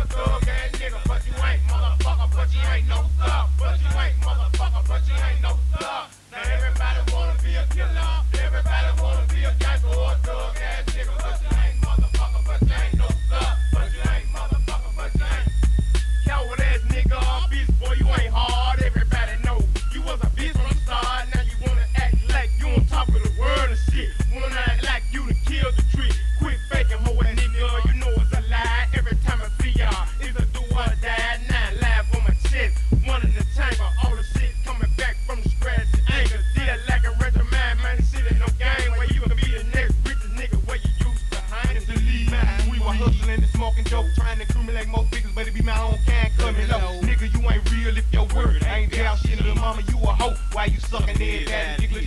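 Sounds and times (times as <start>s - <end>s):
rapping over a heavy bass beat: 0.0s - 52.0s.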